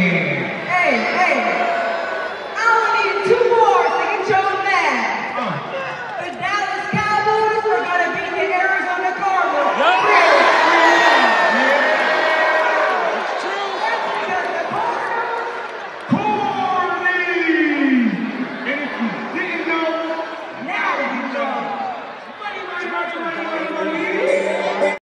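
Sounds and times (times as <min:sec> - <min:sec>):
crowd noise: 0:00.0 - 0:25.0
voices over public address: 0:00.0 - 0:25.0.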